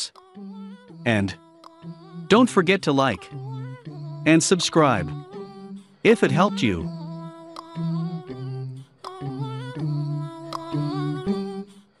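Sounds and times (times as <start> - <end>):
wordless humming vocal: 0.0 - 11.7.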